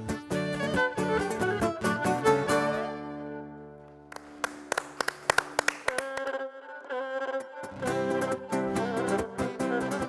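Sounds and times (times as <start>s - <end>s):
plucked lute notes: 0.0s - 4.1s, 6.1s - 10.0s.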